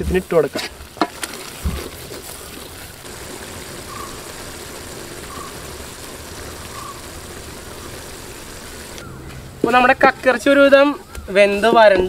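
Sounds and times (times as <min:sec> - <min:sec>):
curry boiling in a pot: 0:00.0 - 0:10.6.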